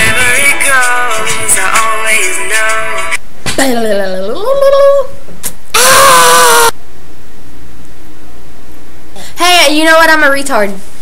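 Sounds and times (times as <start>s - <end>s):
girl screaming: 5.7s - 6.8s.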